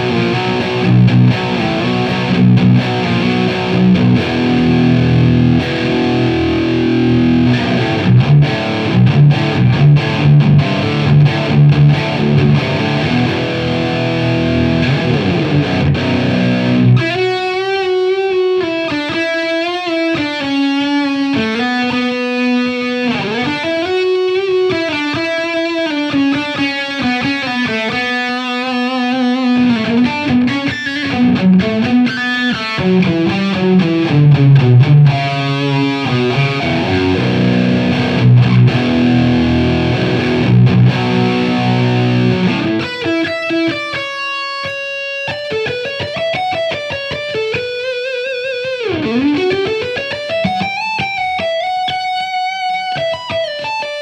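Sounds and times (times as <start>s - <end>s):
distorted electric guitar riffing: 0.0s - 54.0s
electric guitar lead melody: 0.0s - 54.0s.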